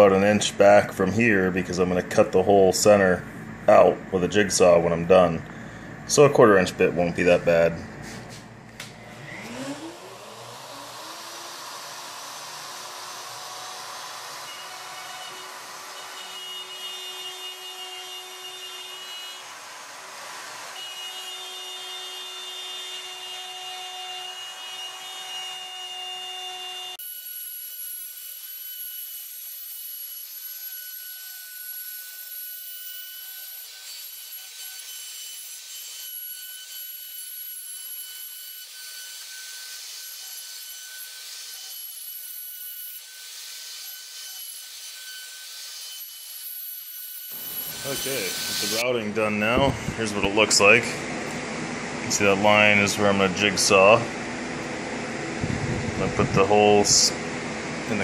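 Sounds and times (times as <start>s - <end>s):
router cutting wood: 8.8s - 54.8s.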